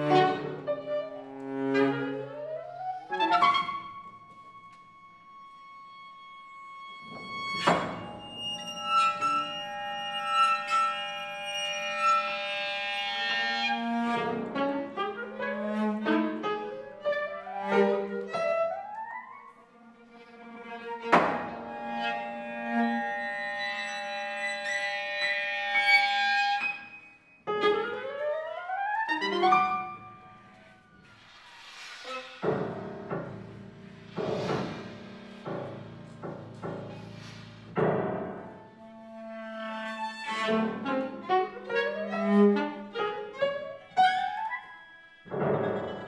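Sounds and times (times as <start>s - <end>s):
chamber music ensemble: 0.0s - 31.4s, 38.3s - 46.0s.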